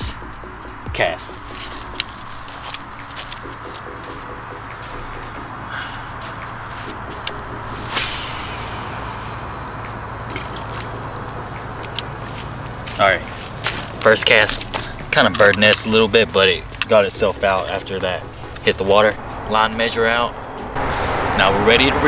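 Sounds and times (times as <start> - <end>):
outdoor background noise: 0.0 - 22.0
fishing rod swish: 6.3 - 9.8
high whir of reel spool: 7.7 - 10.2.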